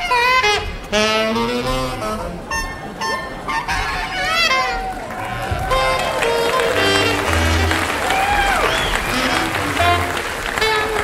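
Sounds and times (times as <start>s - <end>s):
free jazz reed playing: 0.0s - 11.0s.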